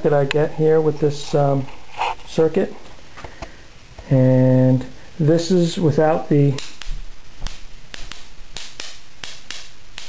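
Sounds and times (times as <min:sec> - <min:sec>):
high-voltage spark snaps: 0:06.4 - 0:10.0.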